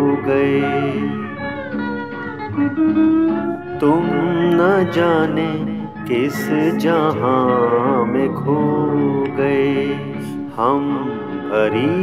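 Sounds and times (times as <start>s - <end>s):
instrumental fill with gliding notes: 0.0s - 12.0s
person singing: 0.0s - 12.0s.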